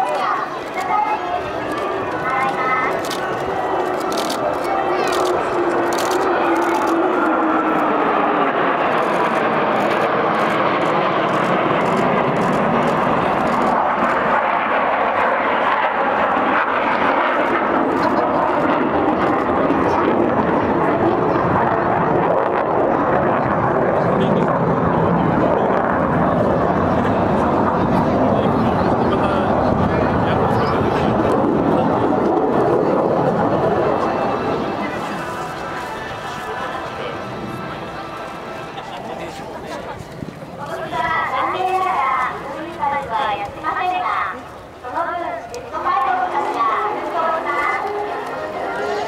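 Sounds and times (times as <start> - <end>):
jet engines roaring overhead: 0.0 - 49.0.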